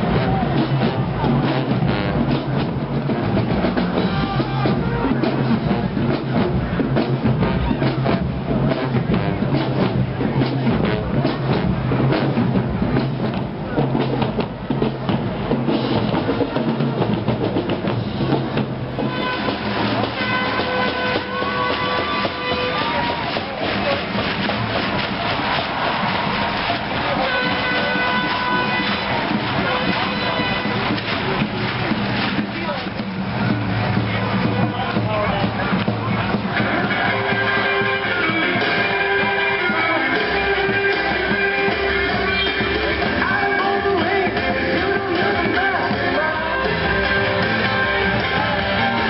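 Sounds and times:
brass holding low notes: 0.0s - 49.0s
steady drum beat: 0.0s - 49.0s.

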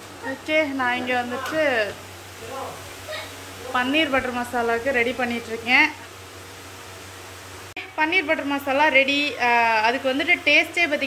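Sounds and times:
gravy simmering hiss: 0.0s - 11.0s.

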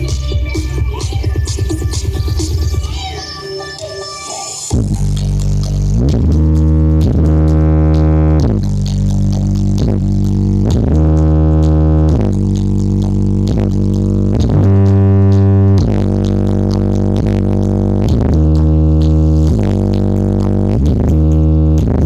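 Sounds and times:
deep synth bass notes: 0.0s - 2.9s, 4.7s - 22.0s
loud electronic music: 0.0s - 22.0s.

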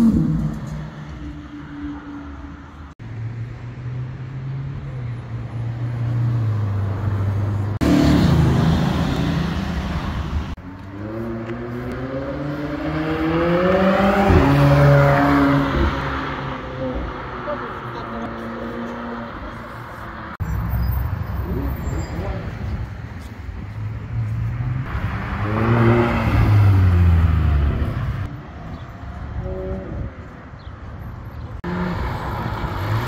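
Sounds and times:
sports car accelerating hard: 10.8s - 17.6s, 24.5s - 28.3s.

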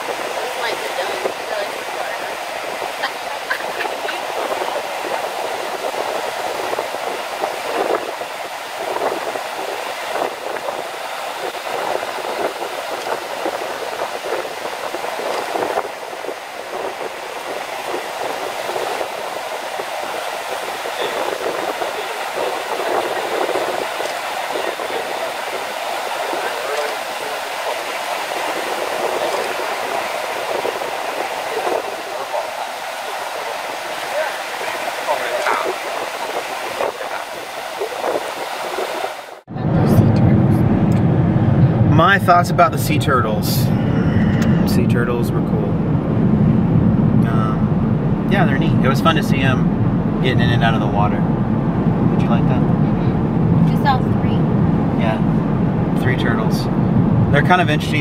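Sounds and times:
ocean surf washing over rocks: 0.0s - 39.5s.

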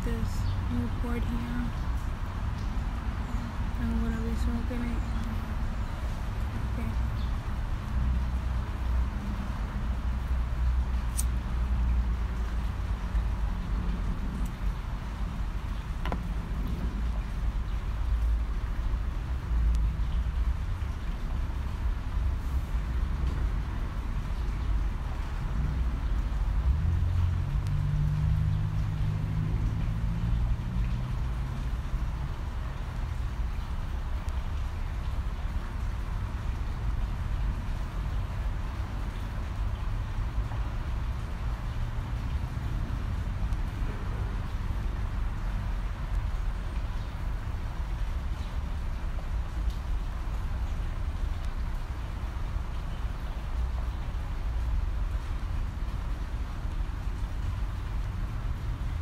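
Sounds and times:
distant road traffic rumble: 0.0s - 59.0s
vehicle engine passing by: 25.3s - 32.4s.

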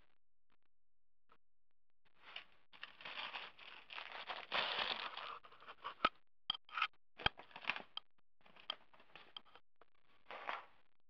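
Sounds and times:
plastic bags rustling: 2.8s - 5.4s.

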